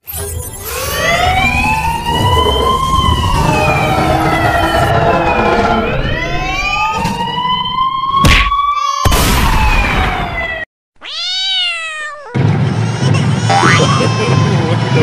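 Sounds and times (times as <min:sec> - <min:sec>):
wailing siren: 0:00.5 - 0:10.6
low rumble: 0:01.3 - 0:07.6.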